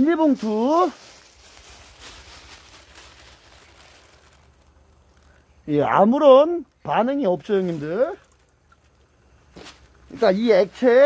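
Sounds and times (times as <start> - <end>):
plastic bag rustling: 0.0 - 5.6, 6.7 - 11.0.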